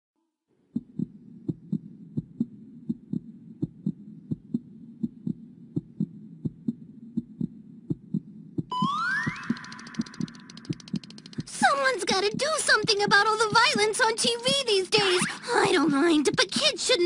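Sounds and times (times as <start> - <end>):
steady low hum: 0.5 - 8.7
heartbeat thumps: 0.7 - 15.0.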